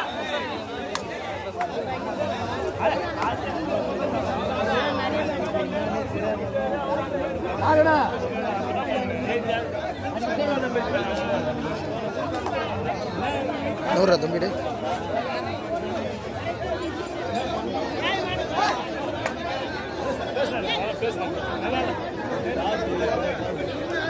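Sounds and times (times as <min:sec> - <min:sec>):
crowd chatter: 0:00.0 - 0:24.0.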